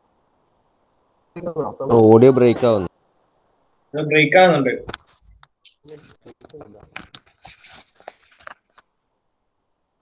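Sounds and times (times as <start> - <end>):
rustling noise: 4.9 - 9.0.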